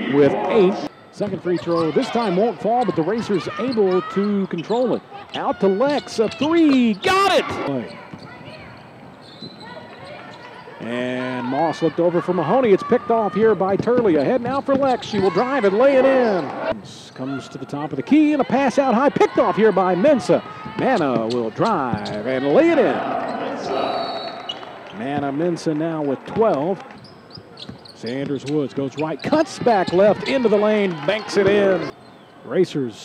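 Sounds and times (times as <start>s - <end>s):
arena hubbub: 0.0s - 33.0s
sneaker squeak on hardwood: 9.2s - 10.6s, 27.0s - 29.7s.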